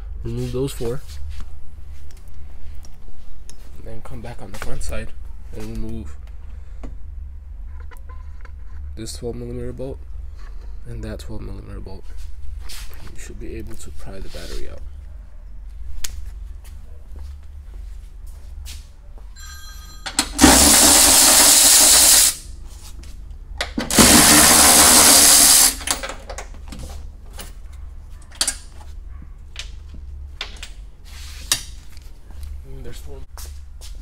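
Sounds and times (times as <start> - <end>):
cordless power tool driving bolts: 20.1 - 22.4, 23.6 - 26.4.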